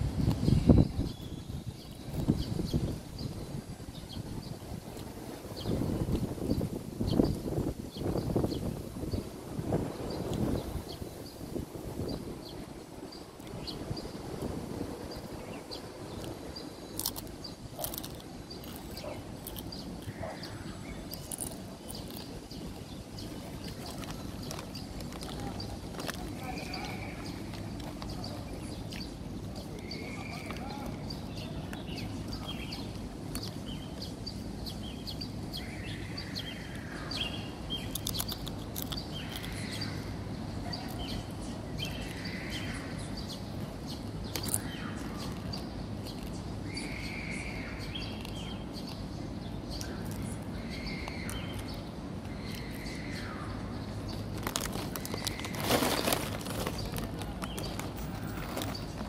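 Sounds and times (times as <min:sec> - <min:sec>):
distant voices: 0:00.0 - 0:59.0.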